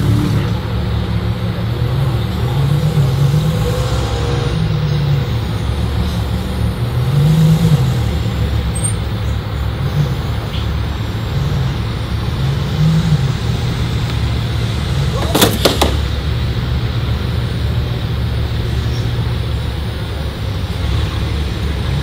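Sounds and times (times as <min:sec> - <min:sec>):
street traffic rumble: 0:00.0 - 0:22.0.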